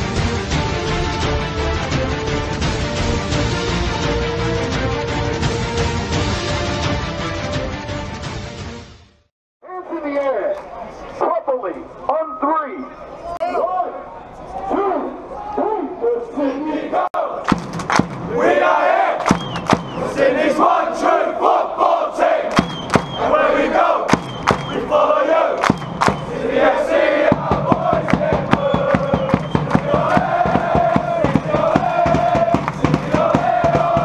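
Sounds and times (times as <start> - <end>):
crowd chanting and singing: 16.4 - 34.0
bass drum beating: 27.2 - 34.0.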